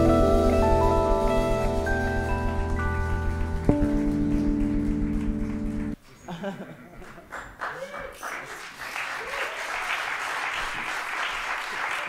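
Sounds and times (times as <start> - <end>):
jazz band sustained chord: 0.0 - 6.0.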